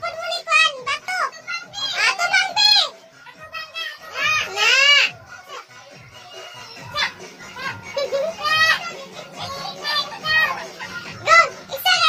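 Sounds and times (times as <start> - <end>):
children shouting while playing: 0.3 - 5.2.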